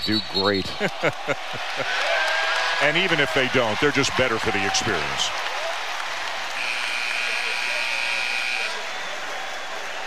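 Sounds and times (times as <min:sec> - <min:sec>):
crowd noise: 0:00.0 - 0:10.0.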